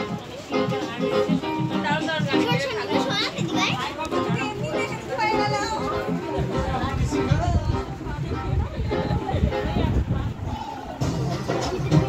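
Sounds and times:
music with regular beat: 0.0 - 9.8, 10.9 - 12.0
children chattering in crowd: 0.0 - 12.0.

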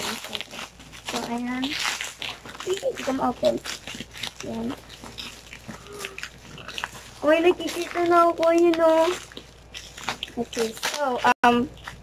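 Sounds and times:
plastic wrapping crinkling: 0.0 - 12.0.

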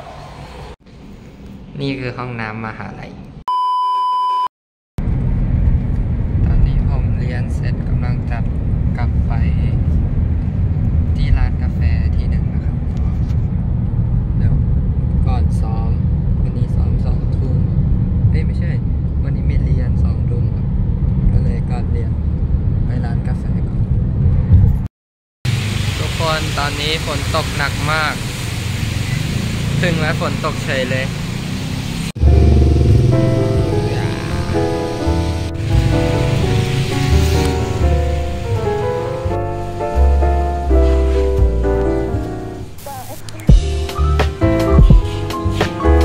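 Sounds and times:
test-tone beep: 3.5 - 4.5.

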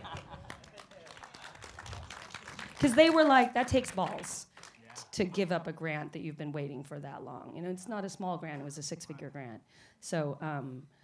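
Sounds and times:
audience applause: 0.0 - 5.1.

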